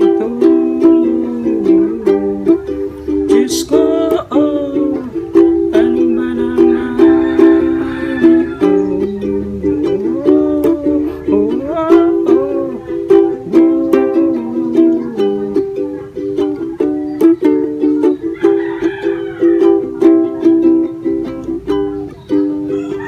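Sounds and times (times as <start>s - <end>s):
ukulele strumming: 0.0s - 23.0s.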